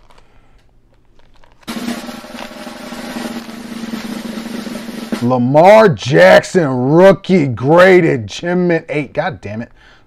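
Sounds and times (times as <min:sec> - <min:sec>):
snare drum roll: 0:01.7 - 0:05.7.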